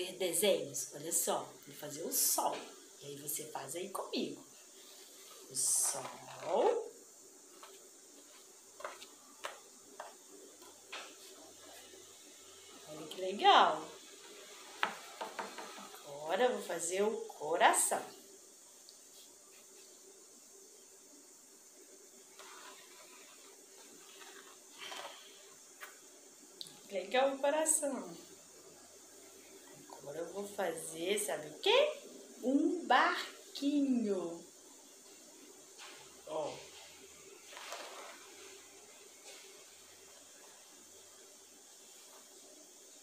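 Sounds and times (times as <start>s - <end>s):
low steady hiss: 0.0s - 43.0s.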